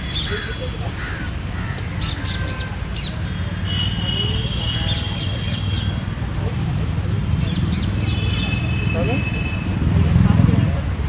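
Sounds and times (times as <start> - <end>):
low traffic rumble: 0.0 - 11.0
crows cawing: 0.2 - 2.0.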